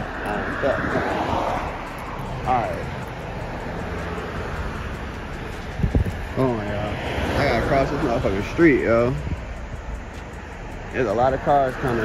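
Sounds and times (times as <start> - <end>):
wind on microphone: 0.0 - 7.4, 9.1 - 10.4
road traffic hiss and rumble: 0.0 - 12.0.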